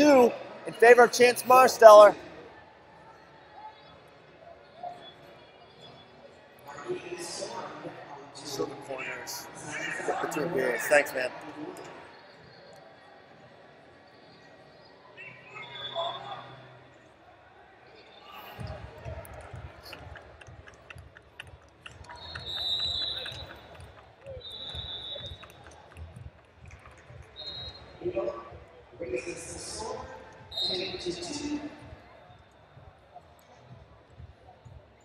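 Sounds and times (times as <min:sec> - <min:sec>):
scattered voices in large hall: 0:00.0 - 0:35.0.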